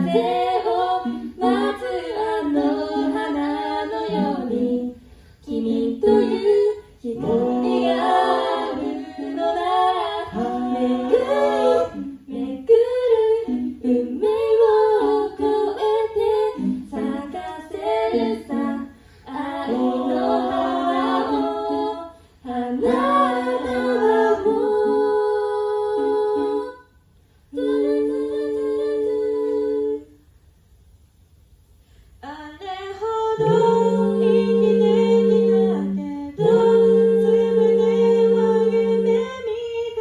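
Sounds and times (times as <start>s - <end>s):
a cappella group singing: 0.0s - 30.4s, 32.2s - 40.0s.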